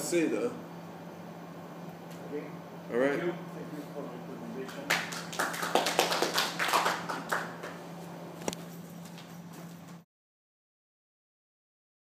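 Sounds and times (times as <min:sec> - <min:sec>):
audience applause: 0:04.9 - 0:07.8.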